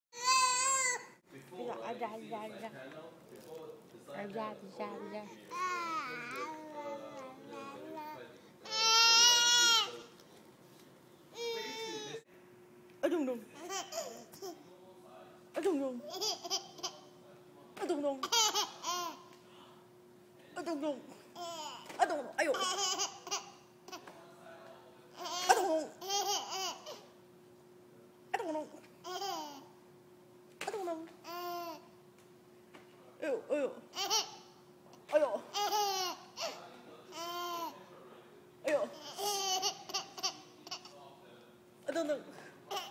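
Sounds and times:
baby babbling: 5.2s - 10.1s, 31.2s - 31.9s
baby laughing: 13.6s - 14.6s, 16.0s - 17.1s, 18.2s - 19.2s, 21.4s - 24.1s, 25.2s - 27.0s, 29.0s - 29.7s, 33.9s - 34.5s, 35.5s - 37.7s, 38.9s - 40.9s, 42.7s - 42.9s.

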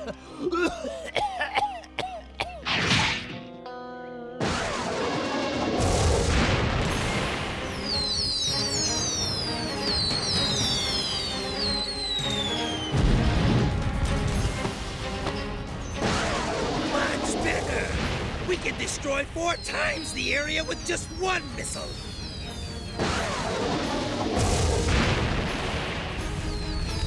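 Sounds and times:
background music: 0.0s - 27.0s
explosions: 4.4s - 8.5s, 12.8s - 14.6s, 16.0s - 20.7s, 21.8s - 27.0s.

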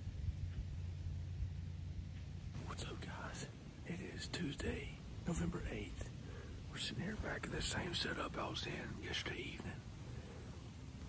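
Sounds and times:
steady low rumble: 0.0s - 11.0s
man whispering: 2.5s - 10.2s.

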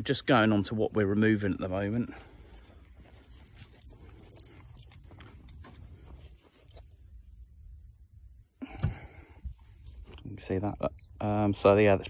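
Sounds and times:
faint clicks and rustles: 0.8s - 10.6s.

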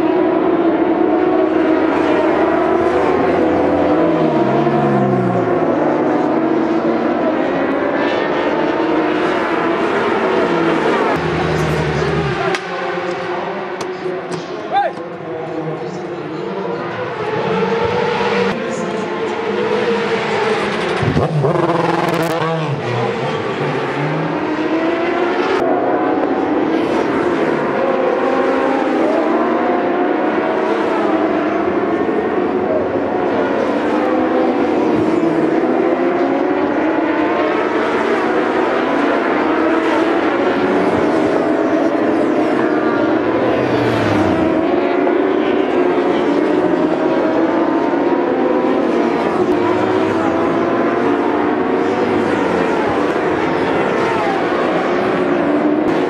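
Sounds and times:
racing motorcycle engines: 0.0s - 56.0s.

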